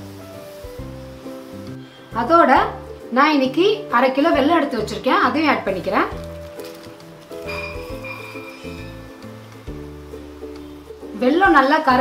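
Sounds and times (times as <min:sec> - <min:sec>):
plucked-string tune: 0:05.8 - 0:10.7.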